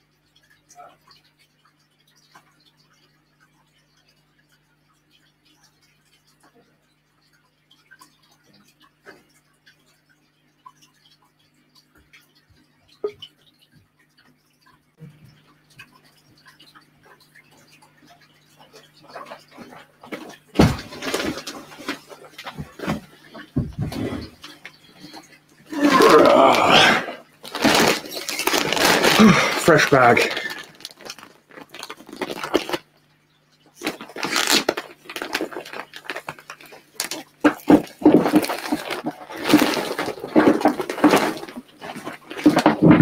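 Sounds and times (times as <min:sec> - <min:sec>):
knocks and handling noise: 0:19.1 - 0:24.7
plastic bag rustling: 0:20.6 - 0:24.4, 0:25.7 - 0:32.8, 0:33.8 - 0:43.0.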